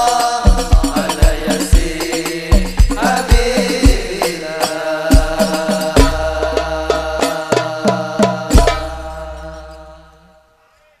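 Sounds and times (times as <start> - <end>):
men chanting a held note: 0.0 - 11.0
drum stroke ringing: 5.1 - 9.9.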